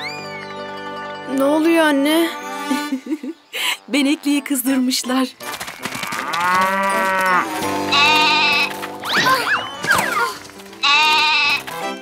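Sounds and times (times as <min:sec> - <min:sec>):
sliding whistle-like sound effects: 0:00.0 - 0:00.6
light background music: 0:00.0 - 0:12.0
cartoon goat bleating: 0:07.9 - 0:09.6, 0:10.2 - 0:11.6.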